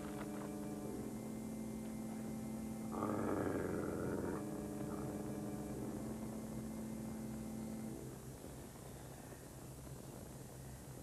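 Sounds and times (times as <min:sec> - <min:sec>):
wolf growling: 0:02.9 - 0:06.2.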